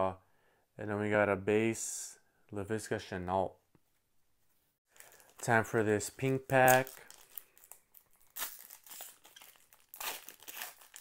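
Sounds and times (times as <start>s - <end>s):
foil wrapper tearing and crinkling: 6.2s - 11.0s.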